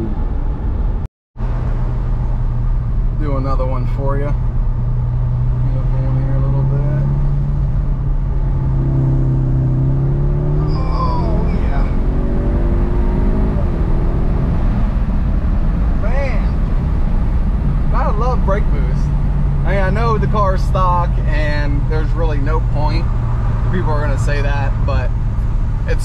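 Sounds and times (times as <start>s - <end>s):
car engine accelerating: 0.0s - 26.0s.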